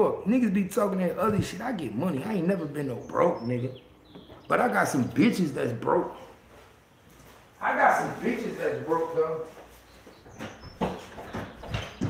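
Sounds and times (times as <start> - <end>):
irregular knocks and thumps: 4.1 - 4.5, 10.2 - 12.0.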